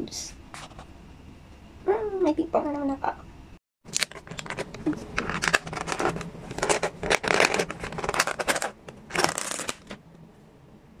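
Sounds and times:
plastic container crackling: 0:03.9 - 0:10.0.

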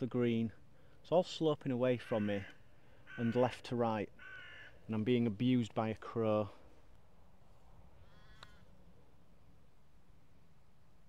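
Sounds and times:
distant crow call: 0:02.0 - 0:05.0, 0:07.9 - 0:09.0.

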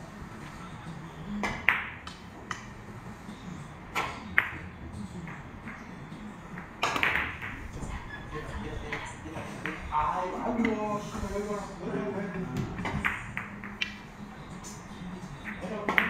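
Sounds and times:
billiard balls clicking: 0:12.8 - 0:14.0.

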